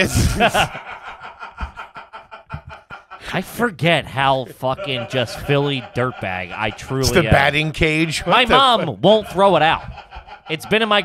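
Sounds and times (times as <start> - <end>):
men laughing quietly: 0.0 - 3.7.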